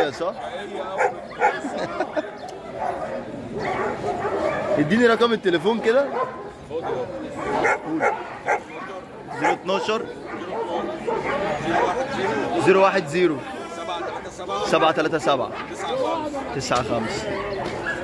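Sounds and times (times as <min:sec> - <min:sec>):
dog barking: 0:00.0 - 0:01.7, 0:02.6 - 0:04.9, 0:06.0 - 0:12.6, 0:17.1 - 0:18.0
voices chattering: 0:00.0 - 0:18.0.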